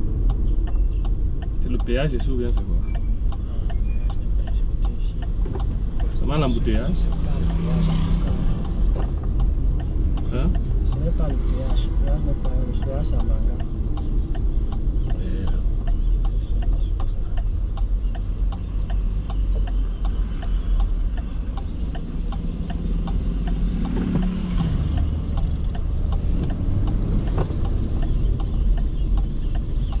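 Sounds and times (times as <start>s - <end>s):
engine and tyres rumble: 0.0s - 30.0s
light regular ticks: 0.1s - 30.0s
passing vehicle engine: 5.0s - 15.5s, 19.3s - 29.9s.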